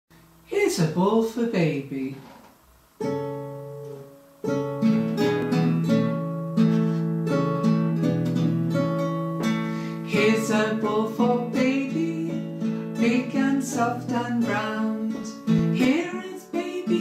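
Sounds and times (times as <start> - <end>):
acoustic guitar chords: 0.2 - 17.0.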